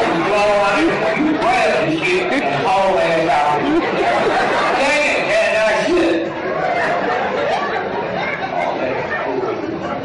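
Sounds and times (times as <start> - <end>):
indistinct chatter of voices: 0.0 - 10.0.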